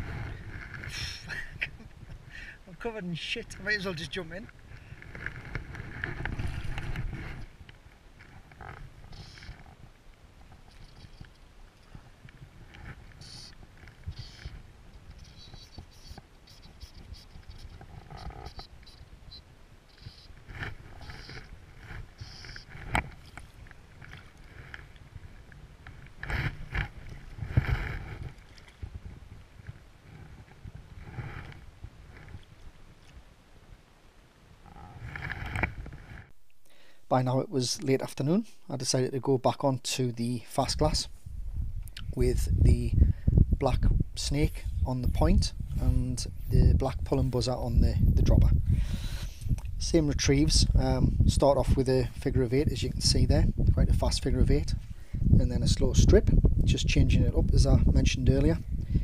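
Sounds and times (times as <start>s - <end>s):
wind buffeting microphone: 11.9s - 32.5s, 40.6s - 59.0s.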